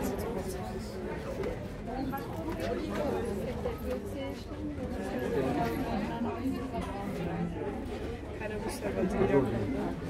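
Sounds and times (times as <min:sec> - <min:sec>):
indistinct chatter of people: 0:00.0 - 0:10.0.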